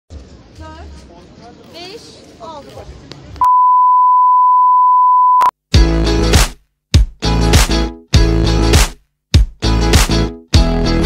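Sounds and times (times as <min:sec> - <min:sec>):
long electronic beep: 0:03.4 - 0:05.5.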